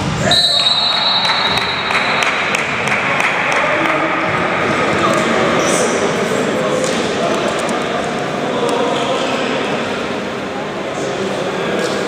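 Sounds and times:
players' voices echoing: 0.0 - 12.0
referee's whistle blast: 0.2 - 2.2.

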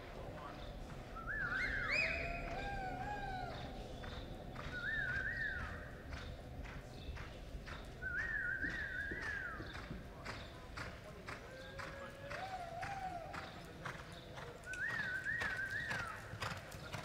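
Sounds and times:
faint horse hoofbeats on dirt: 0.0 - 17.0
spectators whooping: 1.3 - 5.9, 11.6 - 13.5.

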